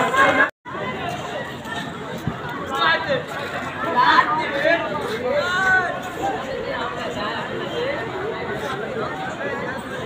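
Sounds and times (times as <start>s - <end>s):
men talking and calling out: 0.0s - 10.0s.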